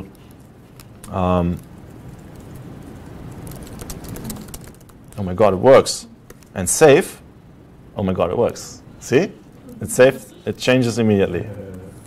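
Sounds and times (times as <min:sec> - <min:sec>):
rapid typing on keyboard: 0:00.0 - 0:05.2
low room hum: 0:00.0 - 0:12.0.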